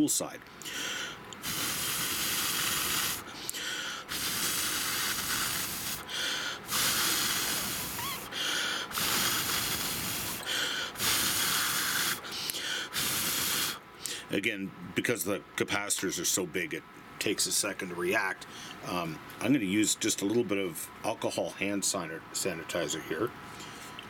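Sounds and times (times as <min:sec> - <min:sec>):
air blown in hissing puffs: 0:00.6 - 0:14.4.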